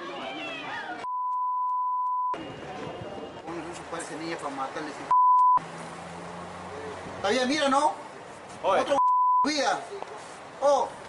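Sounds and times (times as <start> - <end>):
censor bleep tone: 1.0 - 2.4, 5.1 - 5.6, 9.0 - 9.5.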